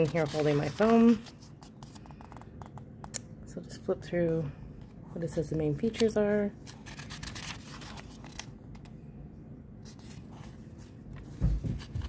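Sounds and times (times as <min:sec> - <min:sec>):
pages being flipped: 0:00.0 - 0:03.2, 0:05.8 - 0:09.0, 0:09.8 - 0:12.0.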